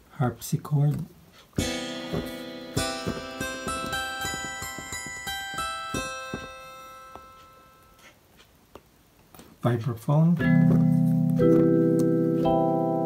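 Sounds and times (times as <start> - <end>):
harpsichord tone notes: 1.6 - 8.0.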